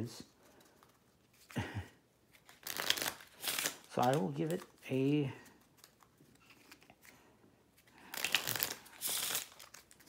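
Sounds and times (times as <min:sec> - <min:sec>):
playing cards rustling: 0:00.3 - 0:01.6, 0:02.2 - 0:10.0.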